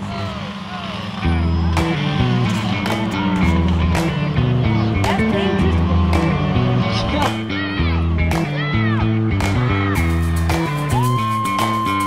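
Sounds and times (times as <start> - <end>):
race car engines: 0.0 - 12.0
background music with bass line: 1.2 - 12.0.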